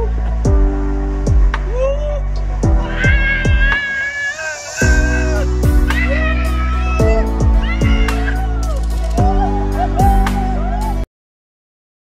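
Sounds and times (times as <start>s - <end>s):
deep sliding bass notes: 0.0s - 3.8s, 4.8s - 11.0s
high wavering melody: 1.8s - 11.0s.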